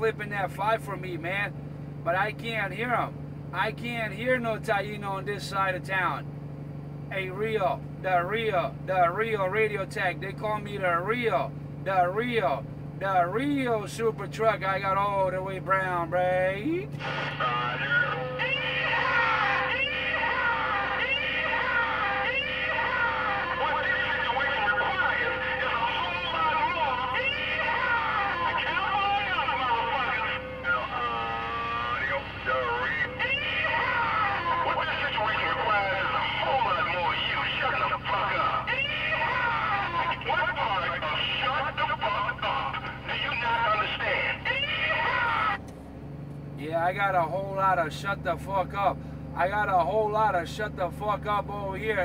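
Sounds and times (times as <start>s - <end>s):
garbled voices through radio speaker: 7.1s - 45.7s
steady radio tone: 16.5s - 45.6s.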